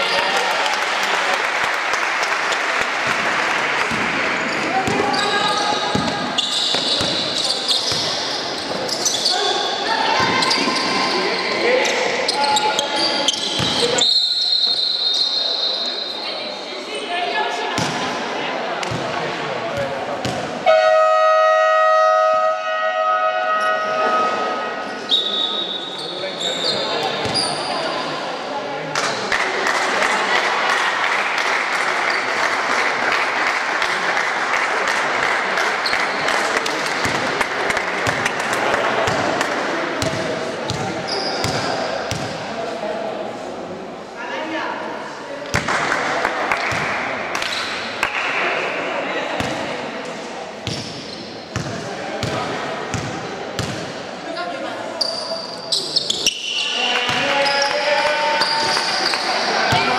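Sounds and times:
crowd noise: 0.0 - 59.9
players' voices: 0.0 - 59.9
basketball bouncing on court: 3.0 - 8.9, 13.4 - 13.9, 19.8 - 20.6, 38.0 - 38.4, 40.0 - 42.4, 50.6 - 53.9
scoreboard horn: 20.6 - 24.6.

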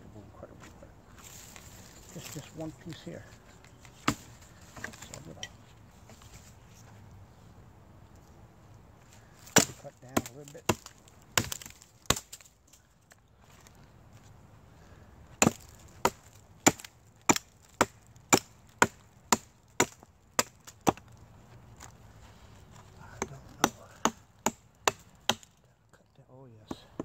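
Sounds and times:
hatchet chopping wood: 4.0 - 5.5, 9.4 - 12.5, 15.4 - 21.1, 23.1 - 25.6.

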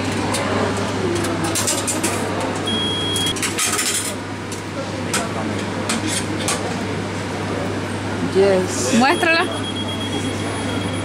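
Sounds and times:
vending machine humming: 0.0 - 11.0
short high beep: 9.0 - 11.0.

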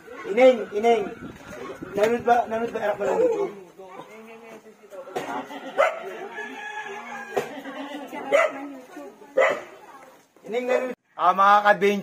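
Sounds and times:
faint voices: 0.0 - 11.0
dog barking: 5.8 - 6.1, 8.3 - 8.7, 9.4 - 9.8.

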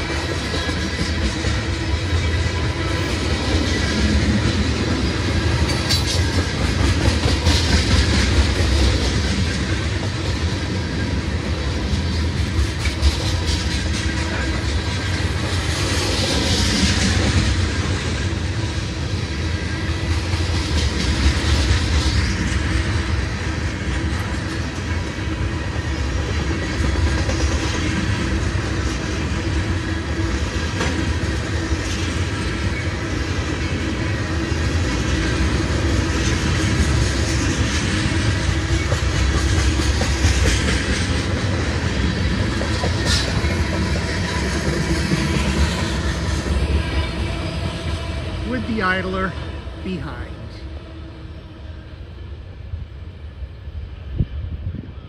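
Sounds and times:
wheels clacking over rail joints: 0.0 - 18.3, 26.2 - 48.2
freight train wheels rumbling: 0.0 - 55.0.

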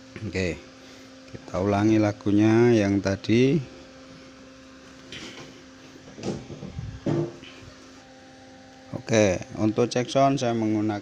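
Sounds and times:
amplifier hum: 0.0 - 11.0.

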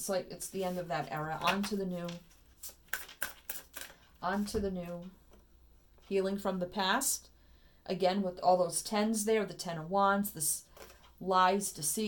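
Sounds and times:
cards being shuffled: 0.6 - 4.5.

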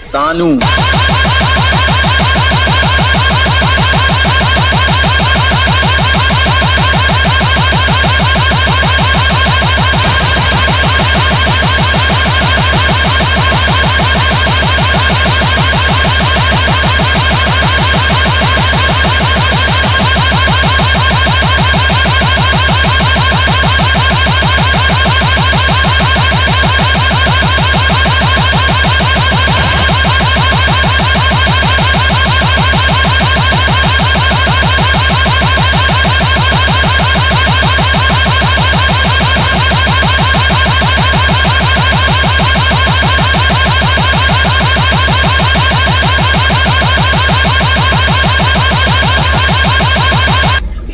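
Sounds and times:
pulsing electronic horn tone: 0.6 - 50.8.

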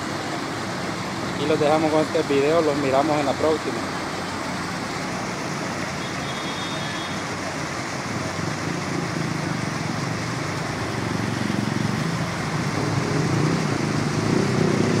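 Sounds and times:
water pouring over a ledge: 0.0 - 15.0.

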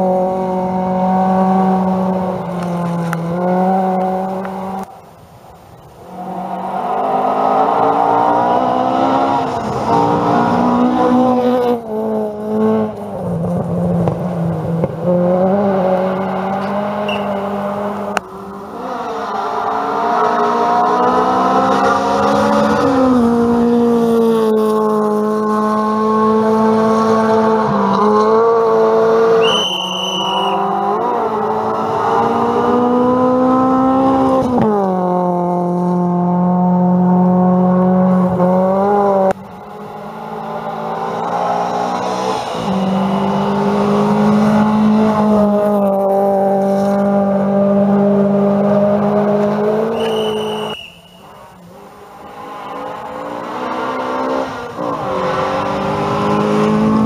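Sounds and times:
rally car engines revving: 0.0 - 57.0
brief high squeal: 50.0 - 51.2.

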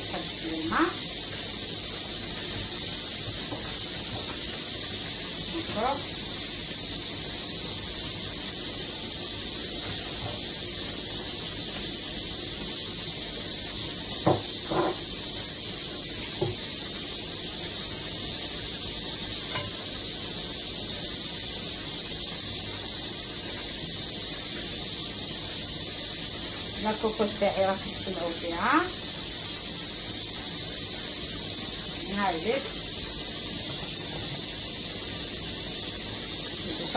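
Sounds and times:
pressure cooker steam hissing: 0.0 - 36.9.

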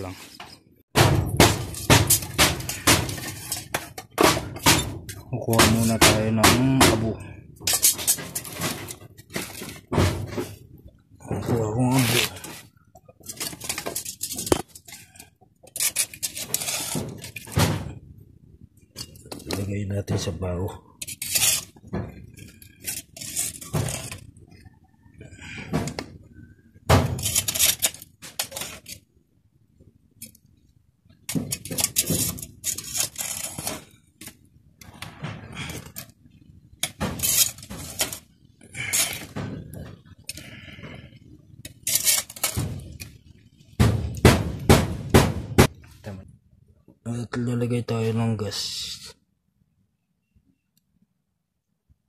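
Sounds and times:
gritty ash scraping: 1.3 - 18.0, 18.9 - 26.1, 27.0 - 29.1, 31.2 - 43.8.

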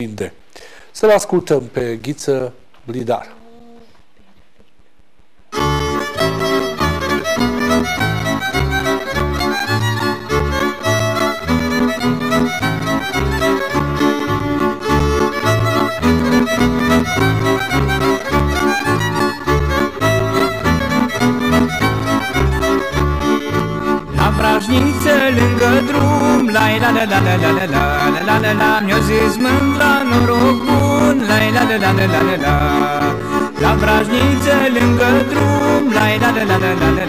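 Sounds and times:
bass and chord accompaniment: 5.6 - 37.0
fiddle playing folk melody: 5.6 - 37.0.

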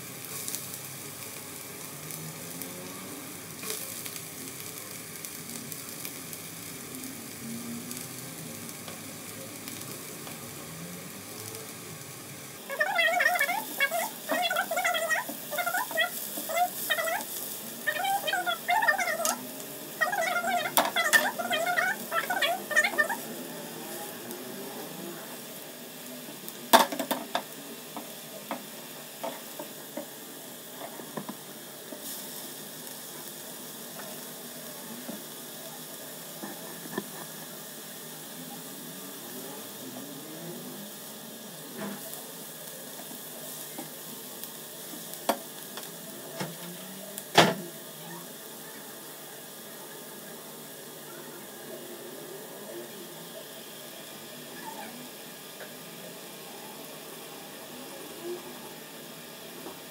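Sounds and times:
onion sizzling in oil: 0.0 - 59.9.

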